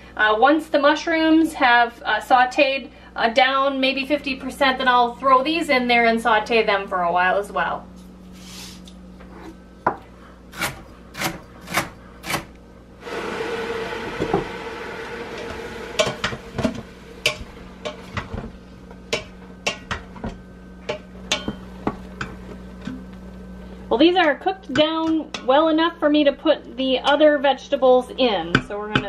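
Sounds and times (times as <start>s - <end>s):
sizzling hiss: 13.0s - 17.8s.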